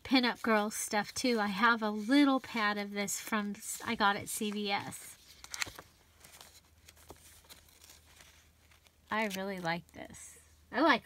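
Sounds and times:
paper rustling and tapping: 4.3 - 9.7.

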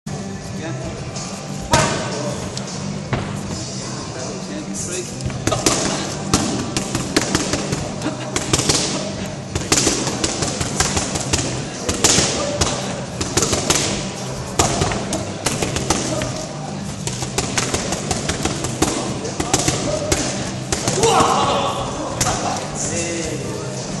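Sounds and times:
background music: 0.1 - 24.0
crowd chatter: 0.4 - 24.0
punches slapping pad mitts: 5.4 - 16.4, 17.0 - 21.5.

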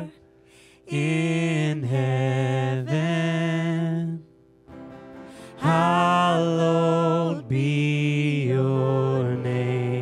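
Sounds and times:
guitars: 0.0 - 10.0
worship band music: 0.0 - 10.0
vocals holding sustained notes: 0.8 - 4.2, 5.5 - 10.0.

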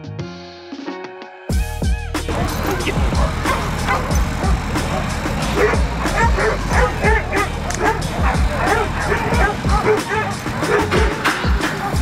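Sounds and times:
background music with low beat: 0.0 - 12.0
dogs barking rapidly: 2.3 - 12.0.

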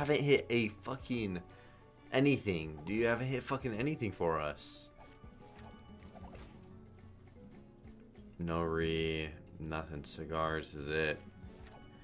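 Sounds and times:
slot game music: 0.0 - 12.0.

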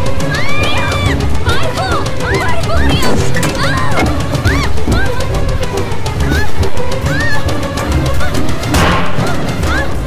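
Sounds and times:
shrill cries: 0.0 - 8.6
fast percussive horror music: 0.0 - 10.0.

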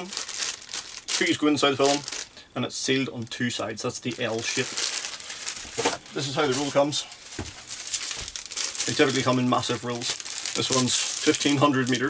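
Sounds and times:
plastic film crinkling: 0.0 - 2.3, 3.8 - 12.0.

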